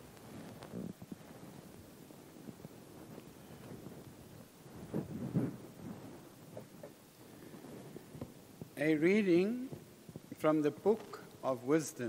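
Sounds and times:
low rustle: 0.0s - 8.9s.

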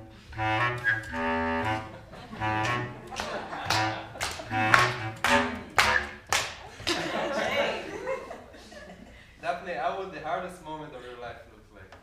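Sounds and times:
short sharp pitched notes and taps: 0.3s - 6.6s.

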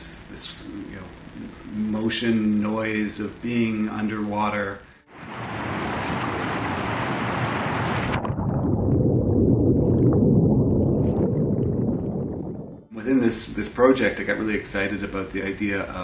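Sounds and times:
whitewater rushing: 5.1s - 8.2s
water churning underwater: 5.1s - 12.9s.

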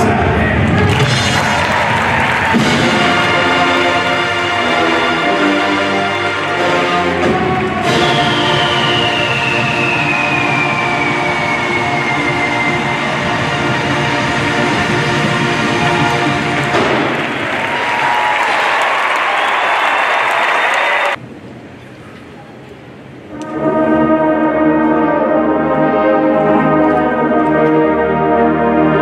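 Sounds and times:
crowd applauding and cheering: 0.0s - 21.2s
marching band chord: 0.9s - 18.0s, 23.3s - 29.0s
whistle sliding down in pitch: 7.9s - 13.7s.

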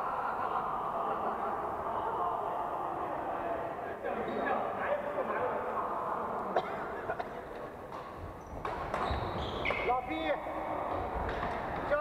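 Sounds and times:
shoes squeaking on wooden floor: 8.0s - 10.0s.

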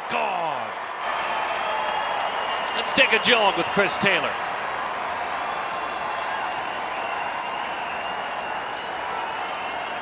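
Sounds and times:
crowd clapping: 0.0s - 10.0s.

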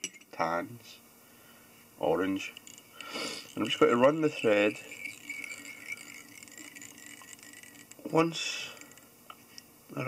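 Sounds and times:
faint steady hum: 0.0s - 10.0s
thread ticking off a bobbin: 2.2s - 9.1s.

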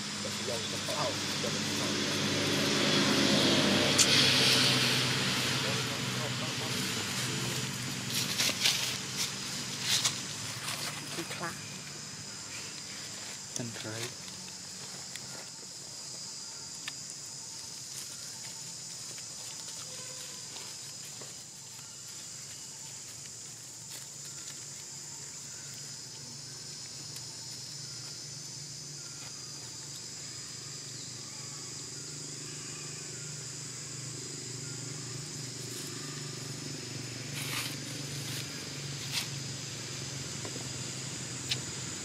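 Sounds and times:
high-pitched insect chorus: 0.0s - 42.0s
low outdoor hum: 0.0s - 42.0s.

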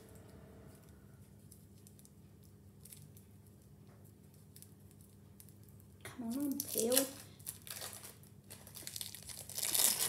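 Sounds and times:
low steady hum: 0.0s - 10.0s
plastic wrapper rustling: 4.4s - 10.0s.

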